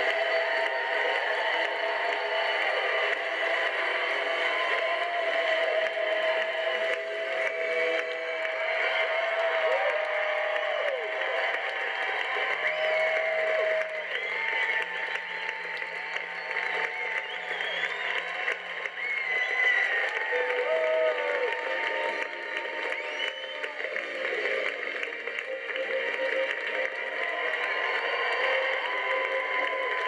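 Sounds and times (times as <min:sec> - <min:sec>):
audience noise: 0:00.0 - 0:30.0.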